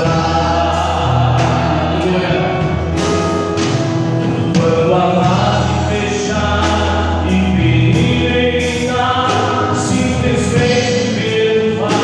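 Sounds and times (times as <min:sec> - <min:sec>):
man singing worship song: 0:00.0 - 0:03.2, 0:04.2 - 0:12.0
bass line: 0:00.0 - 0:12.0.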